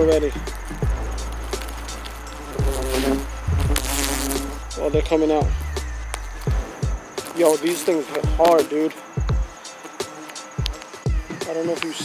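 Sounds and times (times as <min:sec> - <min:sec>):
twigs clicking being poked: 0:00.0 - 0:04.6, 0:05.6 - 0:06.5, 0:07.2 - 0:08.9, 0:10.2 - 0:11.0
hornets buzzing: 0:00.0 - 0:12.0.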